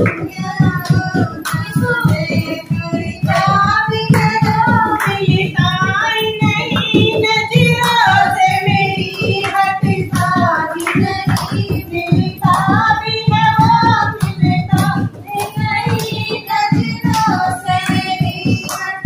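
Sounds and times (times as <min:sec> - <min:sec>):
rhythmic hand-clapping: 0:00.0 - 0:19.0
women singing folk song: 0:00.0 - 0:19.0.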